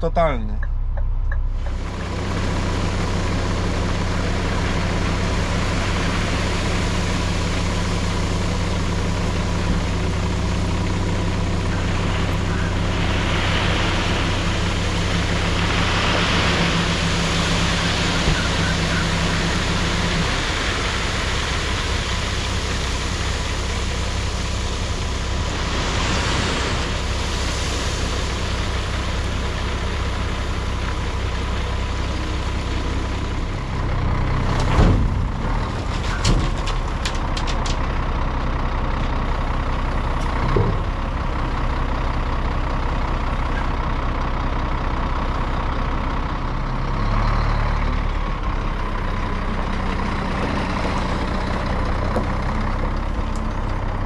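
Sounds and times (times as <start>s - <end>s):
truck diesel engine running: 0.0s - 54.0s.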